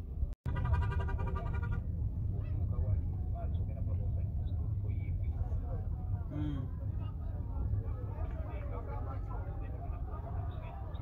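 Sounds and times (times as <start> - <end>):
faint crowd voices: 0.6 - 11.0.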